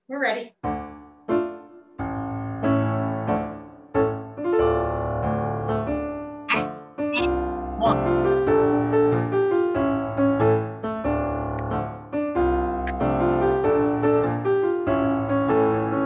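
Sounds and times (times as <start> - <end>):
piano accompaniment: 0.6 - 16.0.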